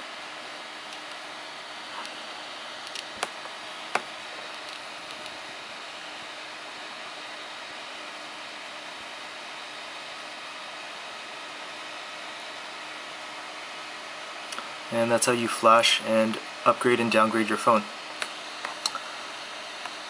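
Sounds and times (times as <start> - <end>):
room noise hiss: 0.0 - 20.0.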